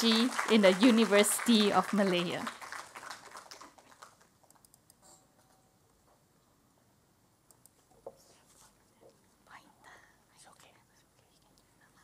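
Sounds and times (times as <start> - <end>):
faint whispering: 8.2 - 12.0.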